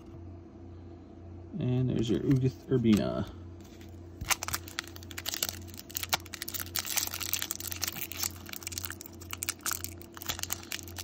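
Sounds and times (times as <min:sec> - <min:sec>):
foil pack crinkling and tearing: 0:04.2 - 0:11.0.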